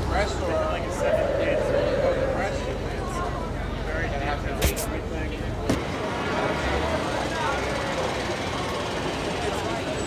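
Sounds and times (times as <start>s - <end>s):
murmur of voices: 0.0s - 7.9s.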